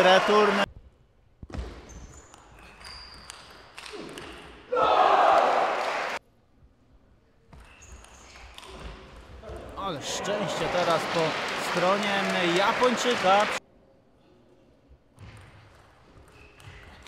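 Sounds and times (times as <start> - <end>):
shoe squeaks on floor: 1.7 - 4.2, 7.5 - 8.9, 16.1 - 17.0.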